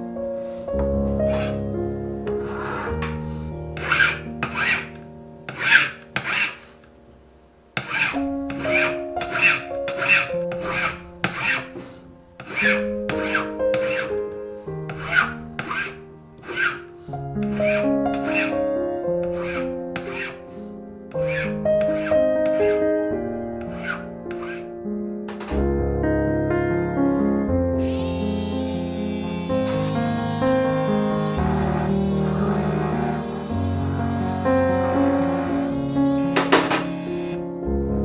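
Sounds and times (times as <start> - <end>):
background music sustained notes: 0.0 - 38.0
file rasping on metal: 2.4 - 6.8, 7.8 - 14.2, 14.9 - 18.6, 19.2 - 22.8, 23.6 - 24.7, 31.1 - 36.6.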